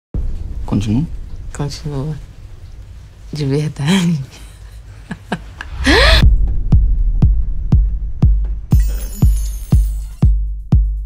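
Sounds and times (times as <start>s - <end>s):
deep bass drone: 5.7s - 9.3s
pitch-dropping kick drum: 6.2s - 9.3s, 10.2s - 11.0s.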